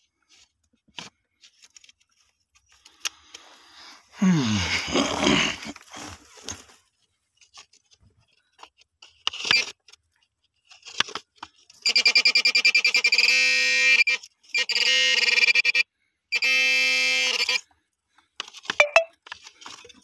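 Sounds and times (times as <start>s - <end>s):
probe scraping dirt: 1.4s - 6.9s
metal detector pulsing tone: 18.8s - 19.1s.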